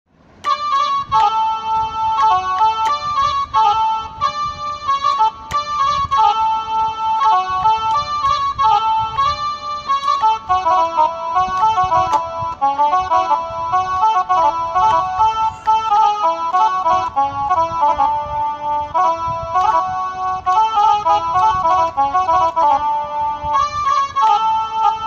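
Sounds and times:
electronic keyboard melody: 0.3s - 25.0s.

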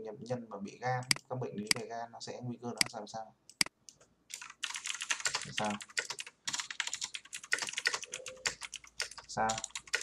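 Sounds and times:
fast typing on keyboard: 4.3s - 10.0s.

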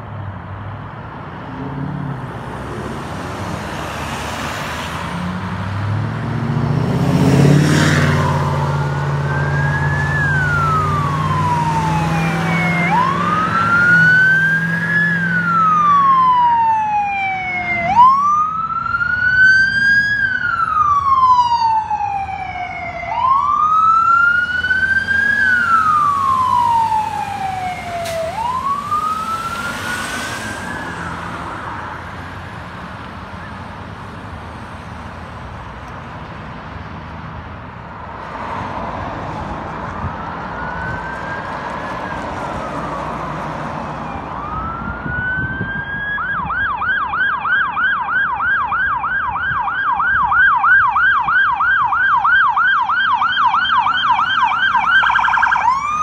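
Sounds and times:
vehicle passing close by: 1.0s - 37.4s, 38.1s - 46.5s
ambulance siren wailing: 7.2s - 34.2s, 39.9s - 56.0s.

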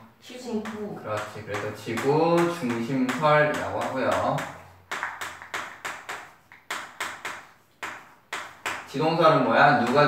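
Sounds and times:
chalk tapping on blackboard: 0.4s - 10.0s.

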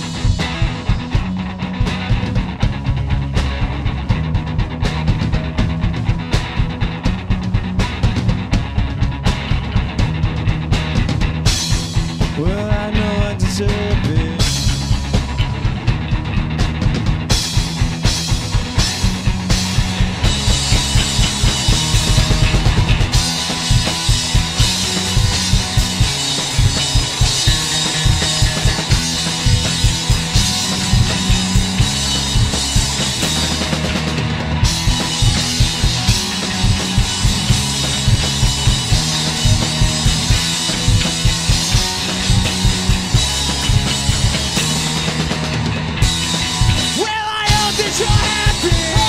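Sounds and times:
distorted electric guitar: 0.0s - 49.0s
drum kit beat: 0.0s - 49.0s
electric bass: 0.0s - 49.0s.

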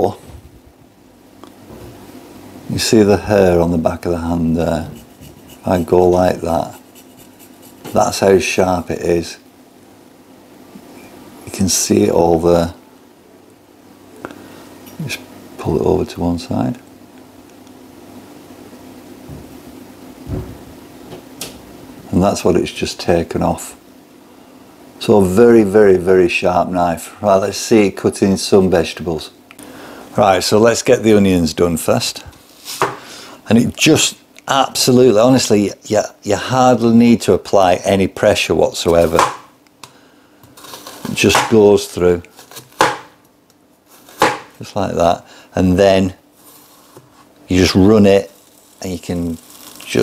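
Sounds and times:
man talking: 0.0s - 0.3s, 2.7s - 6.8s, 7.9s - 9.4s, 11.5s - 12.8s, 15.0s - 16.9s, 22.1s - 23.8s, 25.0s - 29.4s, 30.2s - 32.3s, 33.4s - 39.3s, 41.1s - 42.3s, 44.6s - 46.2s, 47.5s - 50.0s
steady low hum: 0.0s - 50.0s
knife cutting onion: 4.9s - 8.0s, 42.3s - 43.1s
low thud: 20.2s - 20.7s.

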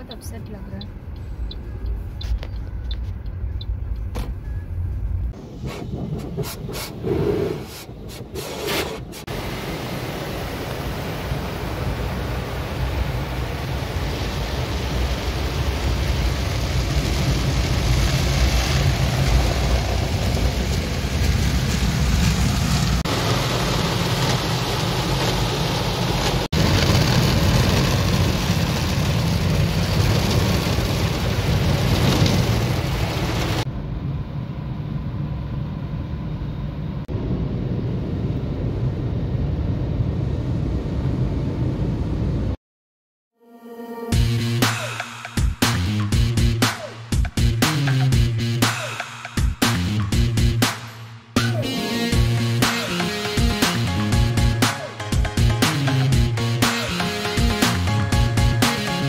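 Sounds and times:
car wash water and brushes rushing: 5.3s - 33.7s.

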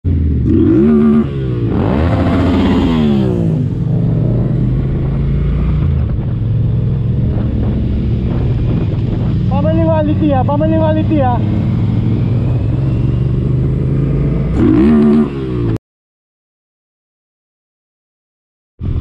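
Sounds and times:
motorcycle engine revving: 0.1s - 15.8s.

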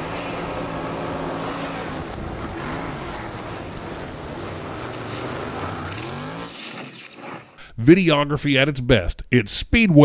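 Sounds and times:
race car engine accelerating: 0.0s - 7.4s.

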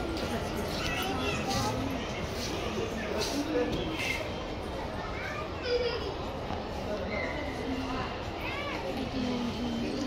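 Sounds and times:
children chattering: 0.0s - 10.0s
child's high-pitched voice: 0.7s - 1.8s, 5.0s - 6.4s, 8.4s - 9.0s.

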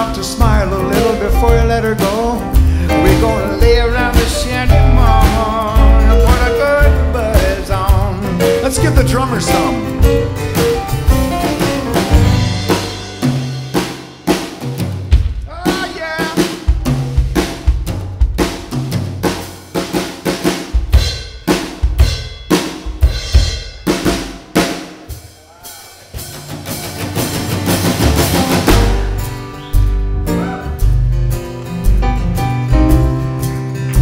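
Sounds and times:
drum kit playing rapid break: 0.0s - 34.0s
low bass part: 2.5s - 13.2s.

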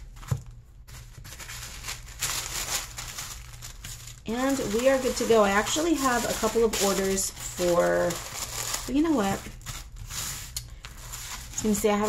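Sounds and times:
tissue paper rustling and crinkling: 0.0s - 12.0s.

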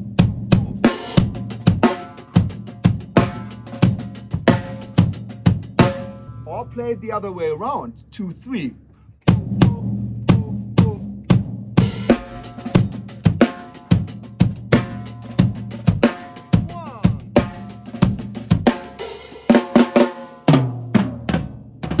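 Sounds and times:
drum kit groove: 0.0s - 22.0s.

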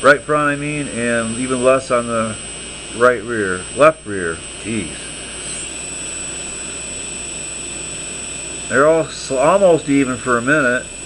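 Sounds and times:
quadcopter motors whining: 0.0s - 11.0s.

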